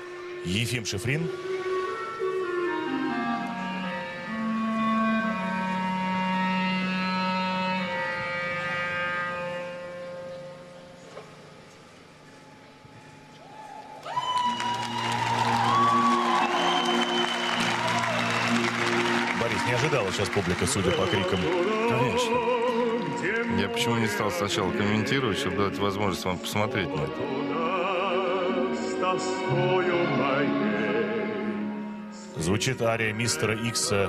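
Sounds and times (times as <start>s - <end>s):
orchestral music with held chords: 0.0s - 12.9s, 14.8s - 34.0s
audience cheering and shouting: 13.5s - 21.9s
applause: 14.0s - 23.8s.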